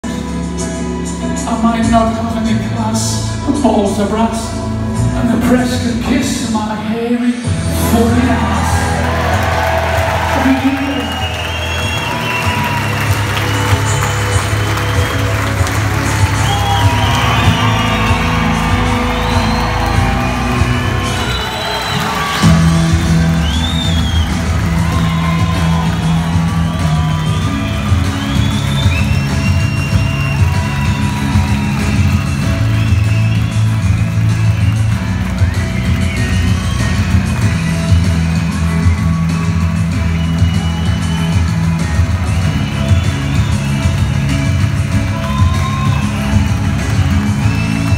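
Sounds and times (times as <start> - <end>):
loud music with steady bass: 0.0 - 47.9
audience cheering and whooping: 7.9 - 47.9.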